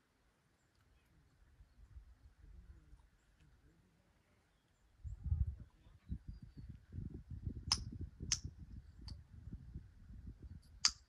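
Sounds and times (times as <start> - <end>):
wind buffeting microphone: 5.0 - 11.0.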